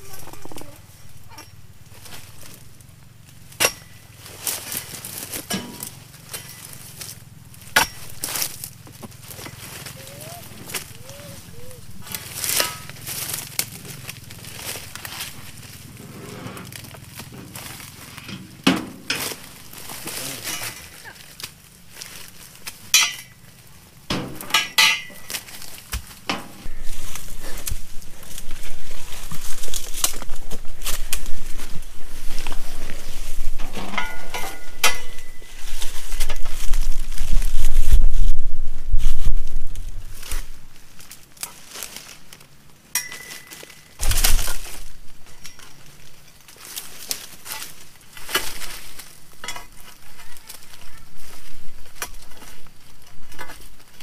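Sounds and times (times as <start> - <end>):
chisel chopping palm frond stalks: 3.4 - 11.3, 12.0 - 37.5, 40.2 - 54.0
low rumble on microphone: 26.2 - 41.0.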